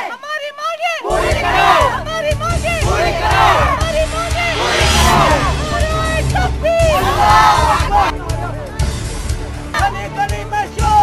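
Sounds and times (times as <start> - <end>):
crowd shouting slogans: 1.0 - 2.1, 2.8 - 3.8
low rumble: 3.1 - 8.6.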